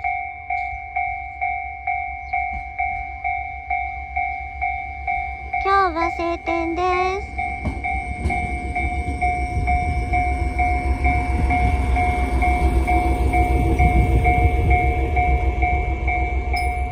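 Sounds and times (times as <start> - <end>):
railcar engine rumbling: 0.0 - 16.9
two-tone warning bell: 0.0 - 16.9.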